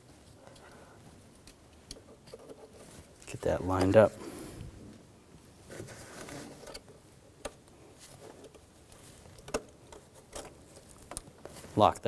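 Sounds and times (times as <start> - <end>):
soft rustling: 0.0 - 12.0.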